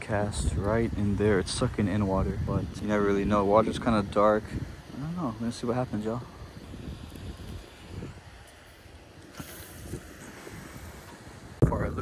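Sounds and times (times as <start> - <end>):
wind buffeting microphone: 0.0 - 12.0
short hiss: 6.3 - 11.6.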